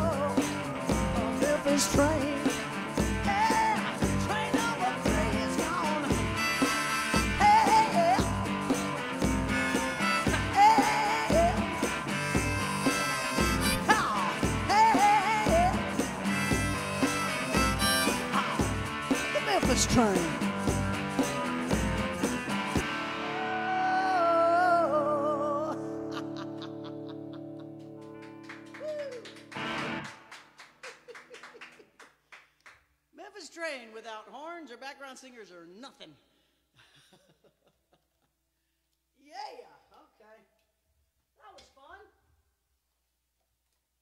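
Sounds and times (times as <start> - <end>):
woman singing rock song: 0.0 - 20.6, 23.1 - 26.4
electric guitar: 0.0 - 30.8.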